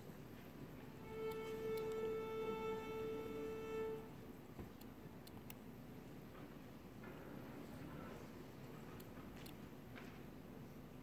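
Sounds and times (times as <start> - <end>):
orchestral instrument tuning note: 0.9 - 4.2.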